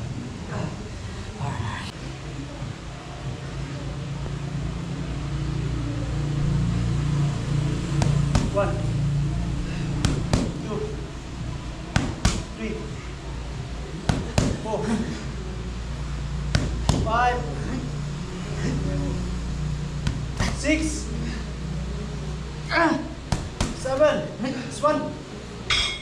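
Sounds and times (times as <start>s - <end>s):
steady low hum: 0.0s - 26.0s
boxing gloves smacking mitts: 8.0s - 8.6s, 10.0s - 10.6s, 11.9s - 12.6s, 14.0s - 14.7s, 16.5s - 17.2s, 20.0s - 20.7s, 23.3s - 23.9s.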